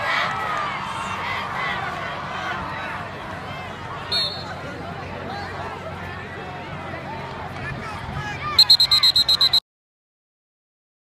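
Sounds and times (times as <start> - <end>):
crowd chatter: 0.0 - 9.6.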